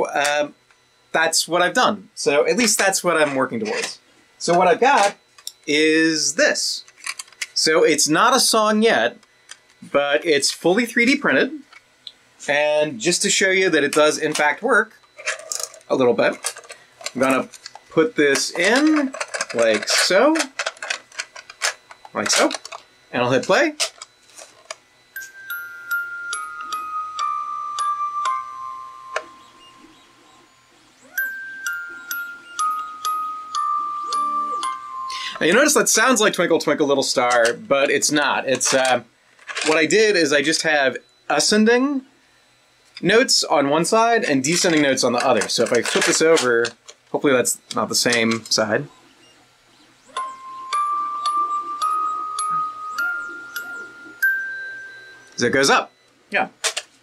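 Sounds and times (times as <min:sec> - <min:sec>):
clockwork whir: 0:00.0 - 0:11.8, 0:12.4 - 0:41.9, 0:43.0 - 0:48.8, 0:50.1 - 0:56.8
music box descending notes: 0:25.1 - 0:36.5, 0:50.1 - 0:55.8.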